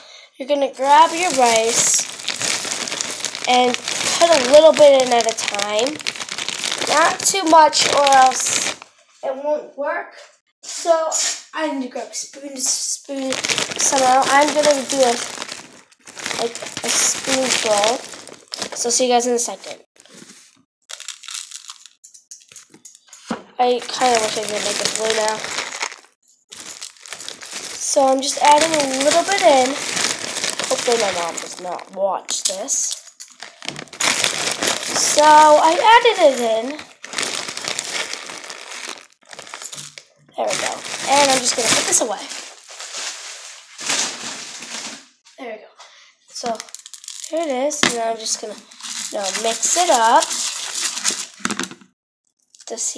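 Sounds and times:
plastic bag crinkling: 0:00.8 - 0:08.9, 0:13.1 - 0:22.7, 0:23.6 - 0:45.2, 0:46.3 - 0:51.8
rustling and handling noise: 0:00.8 - 0:09.2, 0:13.1 - 0:45.4, 0:46.3 - 0:52.7.

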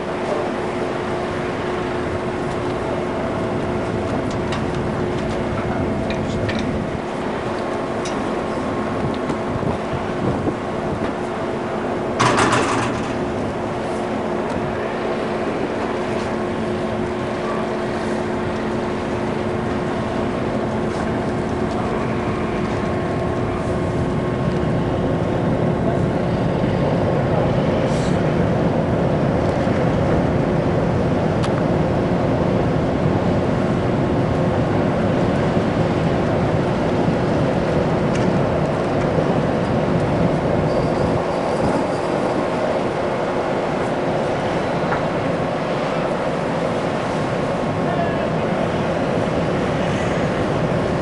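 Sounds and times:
ship machinery hum: 0:00.0 - 0:51.0.

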